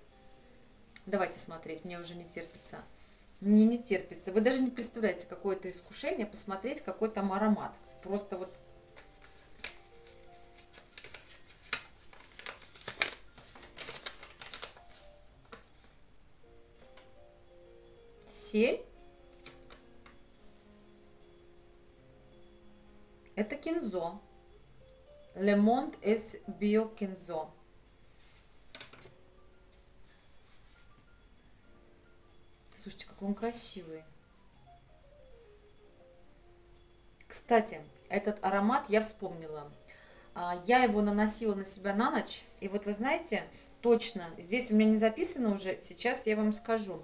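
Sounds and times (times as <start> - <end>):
faint background music: 0.0 - 47.0
paper crinkling and rustling: 7.7 - 16.0.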